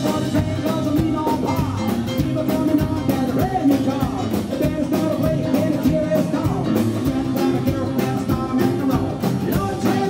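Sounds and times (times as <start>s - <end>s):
acoustic guitar: 0.0s - 10.0s
drum kit: 0.0s - 10.0s
electric keyboard: 0.0s - 10.0s
upright double bass: 0.0s - 10.0s.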